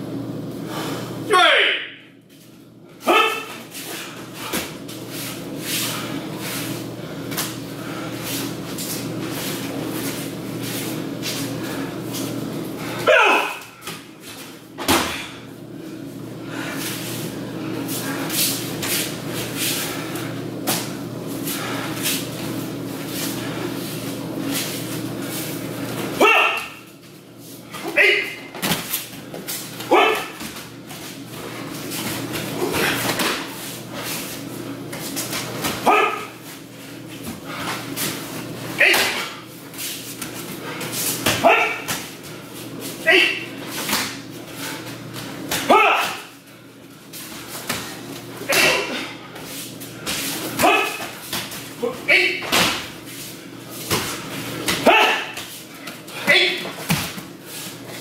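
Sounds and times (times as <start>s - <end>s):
steady hum: 0.0s - 58.0s
people shouting: 3.0s - 3.5s, 13.0s - 13.8s, 26.2s - 26.8s, 29.9s - 30.4s, 35.8s - 36.3s, 41.4s - 41.9s, 45.6s - 46.3s, 50.6s - 51.0s, 54.8s - 55.4s.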